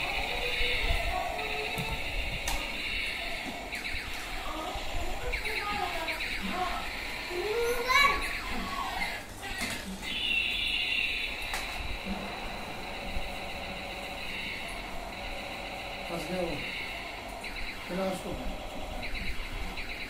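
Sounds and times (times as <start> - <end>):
child's voice: 0.0 - 2.1, 4.4 - 8.9
toy electronic sound effects: 0.0 - 20.0
steady high electronic tone: 10.1 - 20.0.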